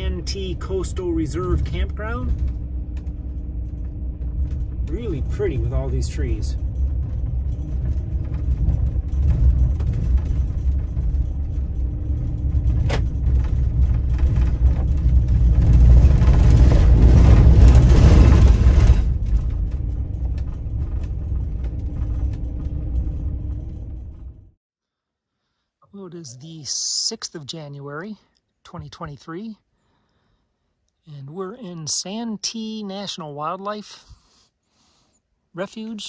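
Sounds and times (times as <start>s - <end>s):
van engine and tyres rumbling: 0.0s - 24.6s.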